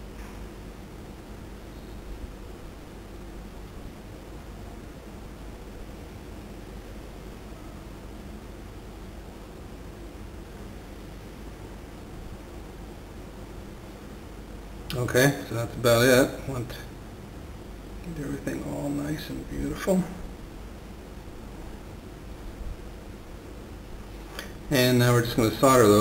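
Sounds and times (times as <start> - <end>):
steady background hiss: 0.0 - 26.0.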